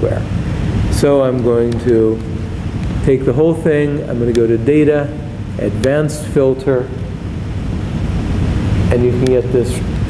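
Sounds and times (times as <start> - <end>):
low rumble of room noise: 0.0 - 10.0.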